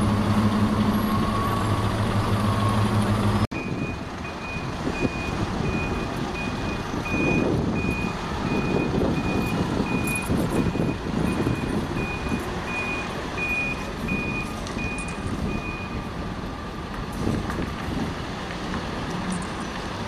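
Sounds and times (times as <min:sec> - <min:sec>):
diesel engine droning: 0:00.0 - 0:20.0
traffic noise: 0:00.0 - 0:20.0
reversing alarm beeping: 0:00.5 - 0:03.0, 0:03.6 - 0:16.1.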